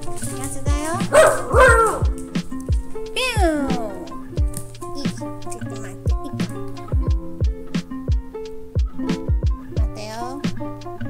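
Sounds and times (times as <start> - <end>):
background music with steady beat: 0.0 - 11.0
dog barking: 1.1 - 2.2.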